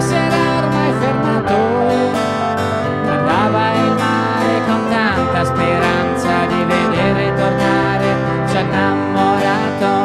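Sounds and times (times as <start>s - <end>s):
keyboard playing: 0.0s - 10.0s
strummed acoustic guitar: 0.0s - 10.0s.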